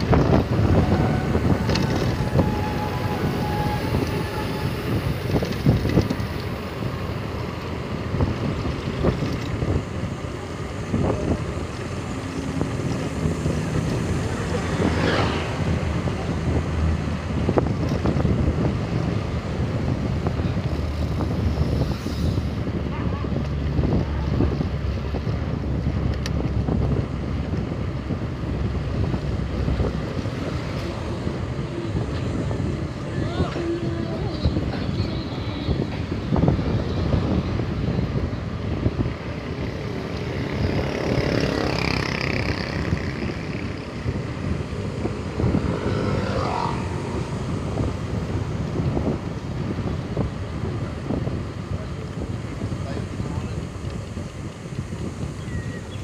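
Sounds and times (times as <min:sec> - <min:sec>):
wind noise on microphone: 0:00.0 - 0:56.0.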